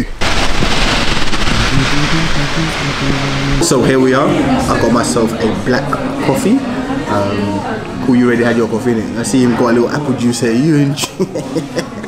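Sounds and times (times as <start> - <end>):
loud dense crackling: 0.0 - 5.6.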